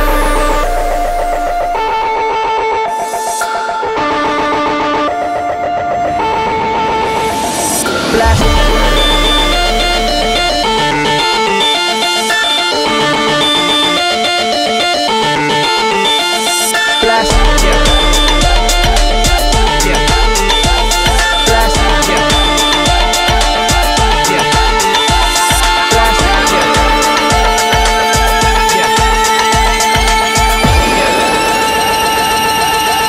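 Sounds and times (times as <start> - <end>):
deep bass: 0.0 - 2.5, 8.3 - 11.5, 17.2 - 24.8
repeating synth melody: 0.0 - 33.0.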